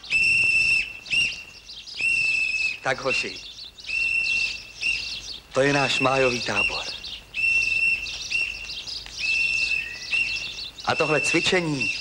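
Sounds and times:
bird singing high notes: 0:00.0 - 0:12.0.

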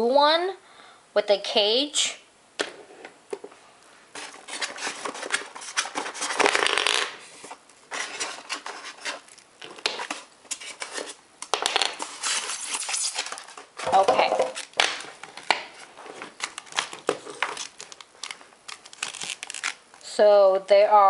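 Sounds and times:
plastic and wooden pieces clattering: 0:04.2 - 0:07.2, 0:07.9 - 0:19.8
foam rubbing and scraping: 0:12.0 - 0:14.0.

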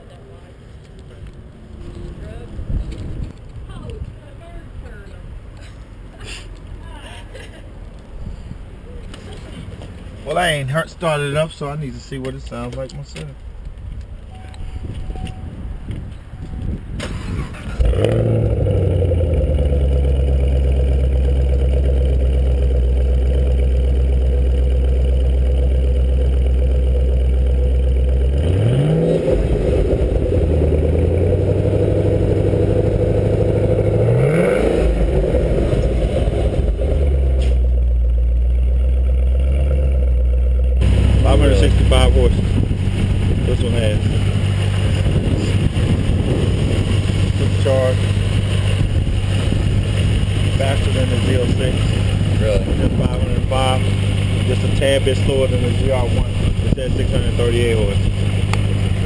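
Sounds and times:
engine throttle blips: 0:14.3 - 0:59.0
car engine starting and idling: 0:16.7 - 0:59.0.

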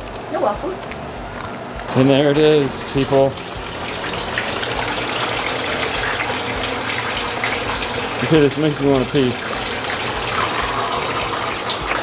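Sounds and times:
water trickling into stone basin: 0:01.9 - 0:12.0.

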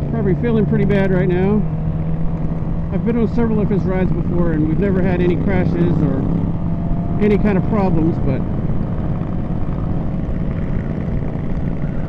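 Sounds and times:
motorcycle engine cruising: 0:00.0 - 0:12.0
wind noise: 0:01.6 - 0:12.0.

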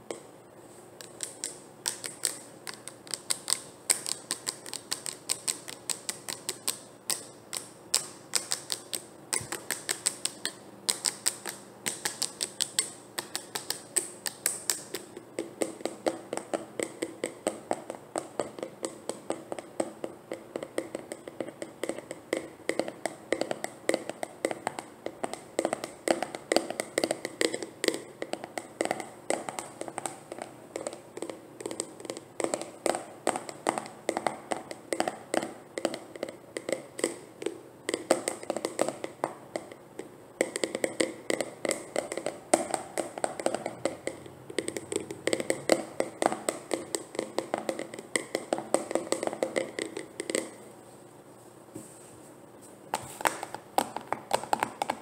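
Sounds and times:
fingernails tapping plastic jar: 0:01.1 - 0:50.6.

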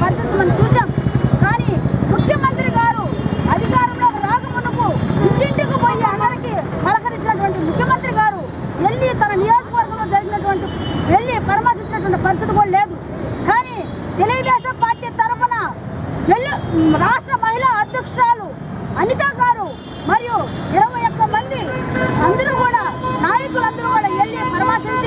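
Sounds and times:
low rumble of street traffic: 0:00.0 - 0:25.0
woman speaking loudly: 0:00.0 - 0:25.0.

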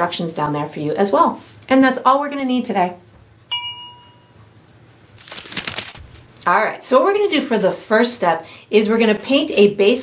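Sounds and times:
bright chime ding: 0:03.5 - 0:04.4.

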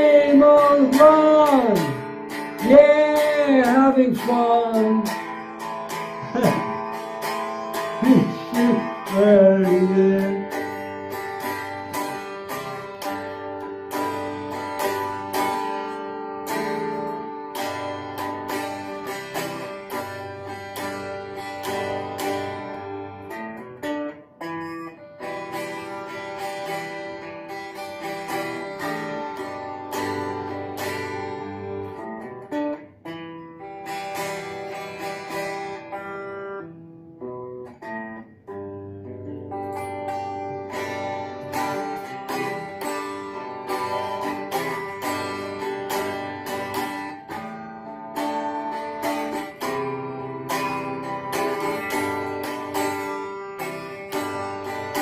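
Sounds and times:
electric guitar playing: 0:00.0 - 0:55.0.

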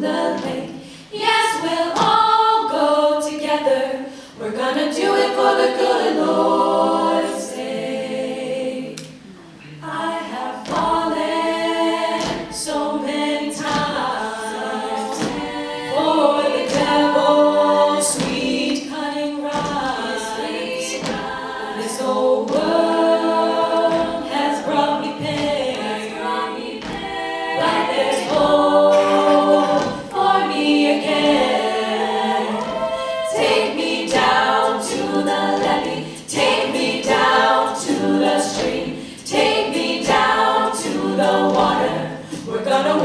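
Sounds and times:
vocal percussion hits: 0:00.0 - 0:02.6, 0:08.9 - 0:43.0
women singing in harmony: 0:00.0 - 0:09.2, 0:09.8 - 0:43.0.

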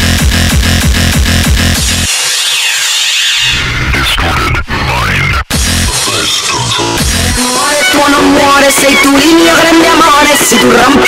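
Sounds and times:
pounding kick drum: 0:00.0 - 0:02.0
low bass: 0:05.5 - 0:07.4.

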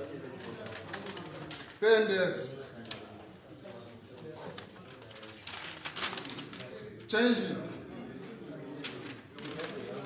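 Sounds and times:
paper and plastic rustling: 0:00.0 - 0:01.8, 0:02.8 - 0:07.1, 0:08.1 - 0:10.0
murmur of voices: 0:00.0 - 0:10.0.

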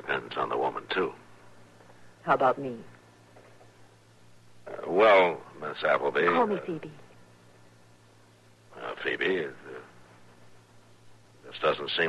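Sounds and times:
low hum with hiss: 0:00.0 - 0:12.0
man saying uh: 0:04.7 - 0:06.7.

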